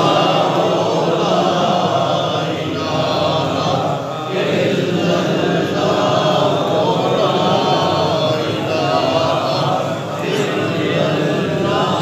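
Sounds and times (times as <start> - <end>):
men chanting together: 0.0 - 12.0.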